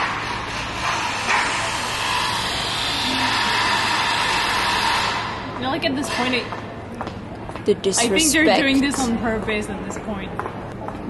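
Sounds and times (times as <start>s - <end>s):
loud rushing machine noise: 0.0s - 6.4s.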